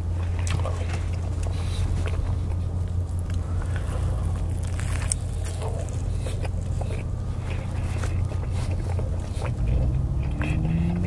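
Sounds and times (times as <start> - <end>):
close chewing: 0.0 - 11.0
steady low rumble: 0.0 - 11.0.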